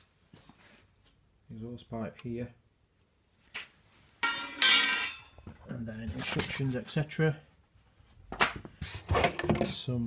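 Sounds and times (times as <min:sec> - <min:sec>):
metal pipe rattling and ringing: 0:04.2 - 0:05.5.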